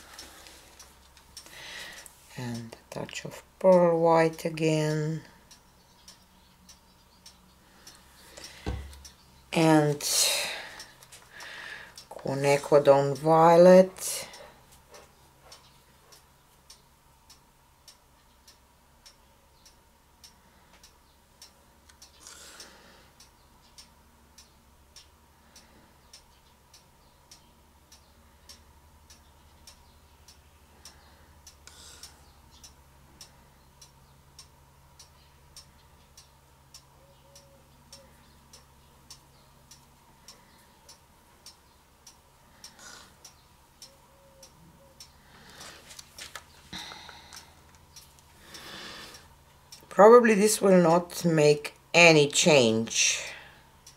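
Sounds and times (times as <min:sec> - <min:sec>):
clock ticking: 0:00.0 - 0:53.0.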